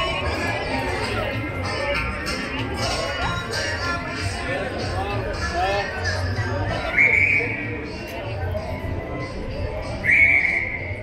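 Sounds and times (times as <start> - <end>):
murmur of street crowd: 0.0 - 11.0
high steady whistle: 6.8 - 7.6, 10.0 - 11.0.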